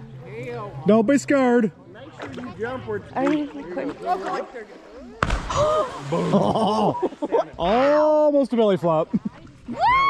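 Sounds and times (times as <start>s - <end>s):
heavy splash into river: 5.2s - 6.9s.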